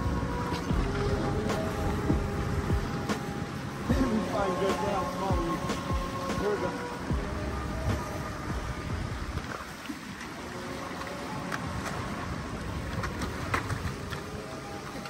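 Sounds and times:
waves washing against boulders: 0.0 - 15.0
wind on microphone: 0.0 - 15.0.

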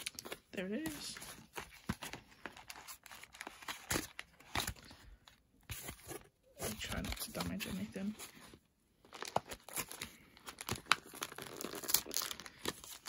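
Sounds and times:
cardboard tearing: 9.2 - 13.0.

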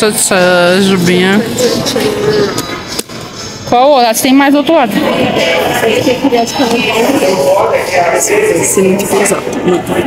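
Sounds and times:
woman speaking: 0.0 - 1.8, 3.7 - 9.6.

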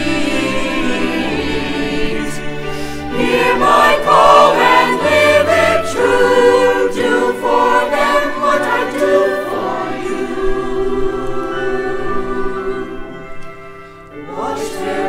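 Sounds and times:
mixed choir singing: 0.0 - 15.0.

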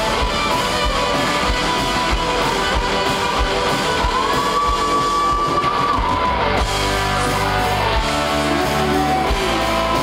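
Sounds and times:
drums: 0.0 - 10.0
rock band playing: 0.0 - 10.0.

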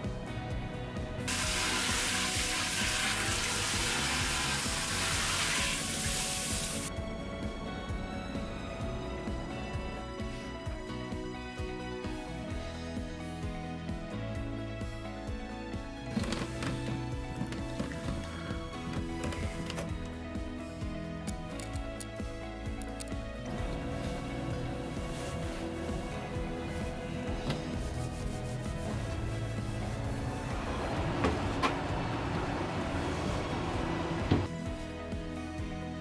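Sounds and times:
soft background music: 0.0 - 36.0
handling and cleaning noises: 1.3 - 6.9.

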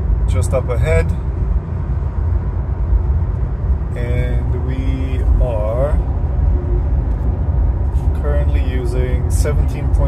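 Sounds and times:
road and tyre rumble in car: 0.0 - 10.0.

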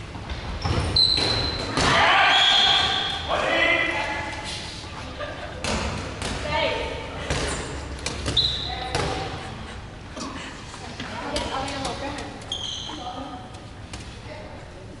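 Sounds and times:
players shouting in hall: 1.8 - 4.2
high squeak: 12.5 - 13.0.

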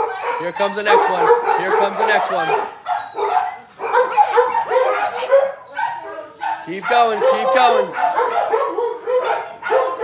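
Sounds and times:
dogs barking and yipping: 0.0 - 10.0.

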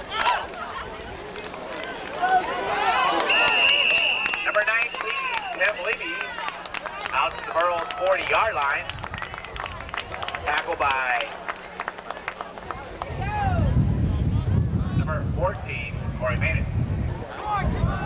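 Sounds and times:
wind buffeting microphone: 8.2 - 10.6, 12.6 - 18.0.

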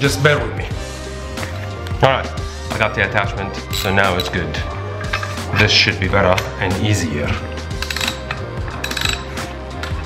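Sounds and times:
background music: 0.0 - 10.0
ratchet wrench clicking: 7.8 - 9.3.

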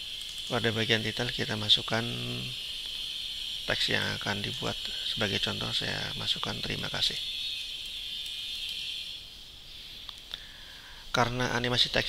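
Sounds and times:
high-pitched hiss: 0.0 - 12.0.

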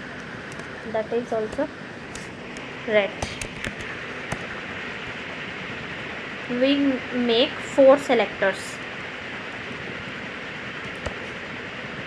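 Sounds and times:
room and microphone hiss: 0.0 - 12.0.

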